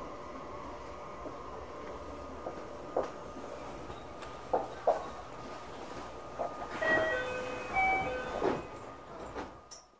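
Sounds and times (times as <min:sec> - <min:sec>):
train rumbling: 0:00.0 - 0:09.8
train wheel squeals: 0:06.7 - 0:08.9.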